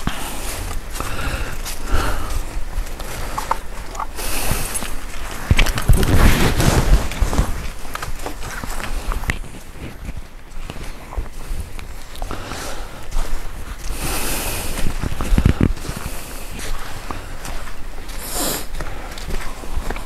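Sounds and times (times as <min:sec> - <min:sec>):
footsteps crunching on leaves: 0:00.0 - 0:20.0.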